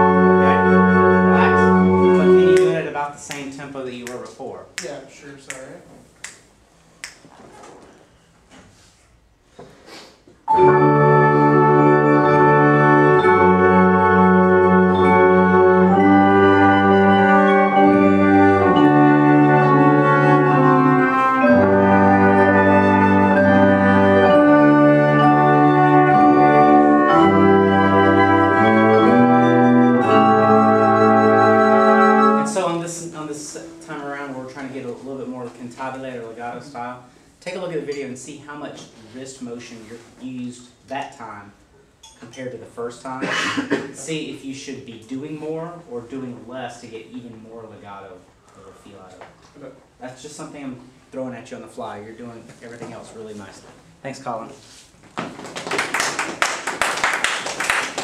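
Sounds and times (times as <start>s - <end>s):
ensemble playing legato chords: 0.0s - 3.4s, 10.5s - 34.6s.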